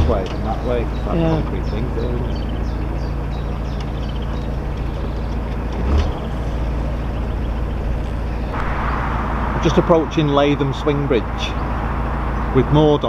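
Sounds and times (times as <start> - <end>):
boat diesel engine droning: 0.0 - 13.0
rush of noise: 7.3 - 13.0
low thump: 8.5 - 12.2.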